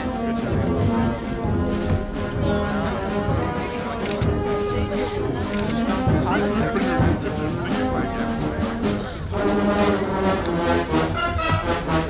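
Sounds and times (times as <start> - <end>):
brass band playing: 0.0 - 12.0
crowd chatter: 0.0 - 12.0.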